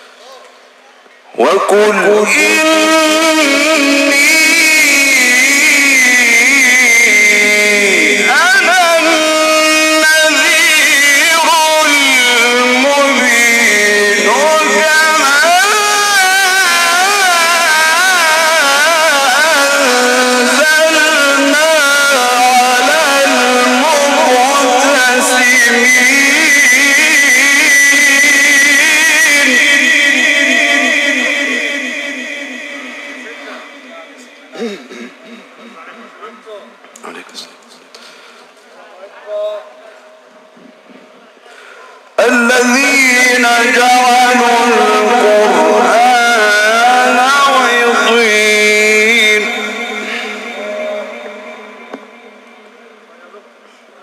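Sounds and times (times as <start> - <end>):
man reciting melodically: 1.3 - 38.3, 41.6 - 53.6.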